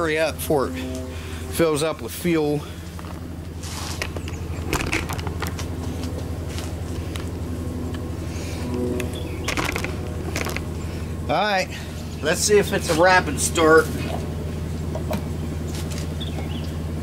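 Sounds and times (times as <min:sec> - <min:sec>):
low mechanical hum: 0:00.0 - 0:17.0
clicks and scuffs: 0:02.9 - 0:08.1.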